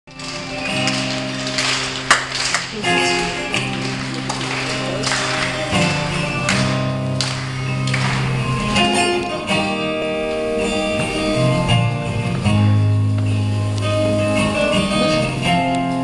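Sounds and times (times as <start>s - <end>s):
acoustic guitar strumming: 0.1s - 16.0s
long held bass notes: 2.8s - 16.0s.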